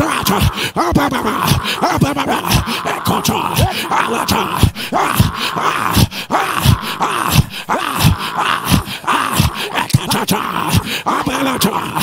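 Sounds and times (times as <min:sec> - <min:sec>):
man praying loudly: 0:00.0 - 0:12.0.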